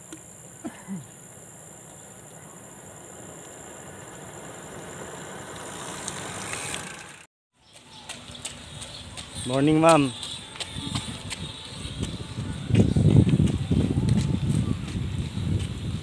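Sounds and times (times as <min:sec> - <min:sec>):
vehicle approaching on road: 0:01.3 - 0:16.0.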